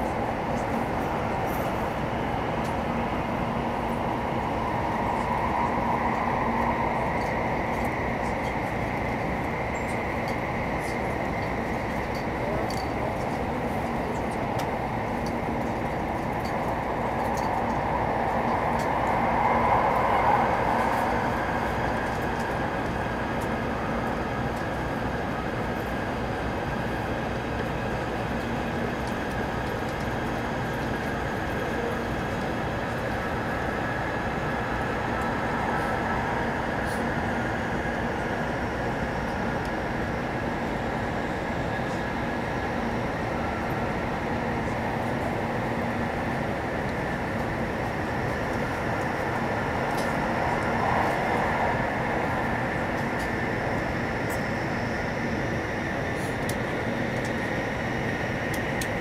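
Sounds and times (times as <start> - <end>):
train wheel and air noise: 0.0 - 59.0.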